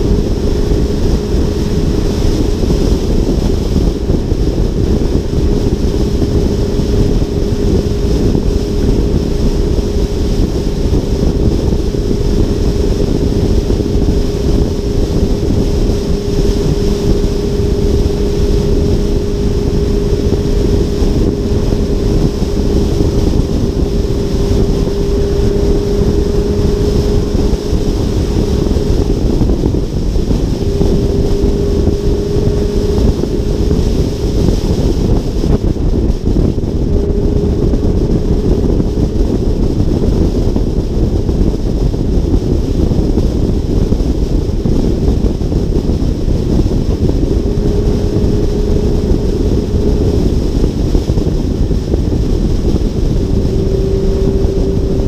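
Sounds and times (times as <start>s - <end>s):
car engine drone: 0.0s - 55.0s
wind rushing over microphone: 0.0s - 55.0s.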